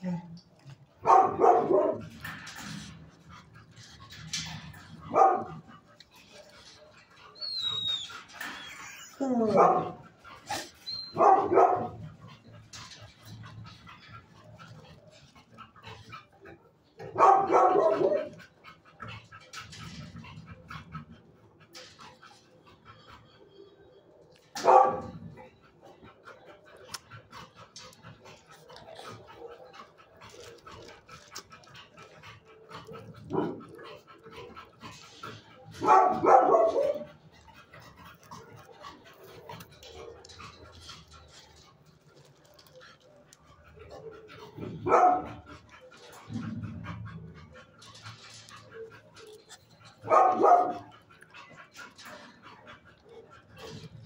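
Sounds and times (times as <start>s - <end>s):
dog barking: 1.0s - 2.0s, 5.1s - 5.6s, 11.2s - 12.0s, 17.2s - 18.3s, 24.6s - 25.1s, 35.8s - 37.1s, 44.8s - 45.4s, 50.0s - 50.9s.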